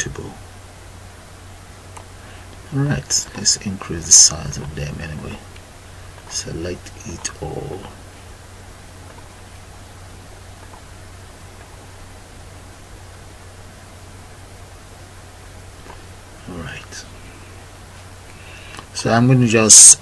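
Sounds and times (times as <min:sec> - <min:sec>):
low hum: 0:00.0 - 0:20.0
microphone hiss: 0:00.0 - 0:20.0
soft breath: 0:02.2 - 0:02.6, 0:18.3 - 0:18.9.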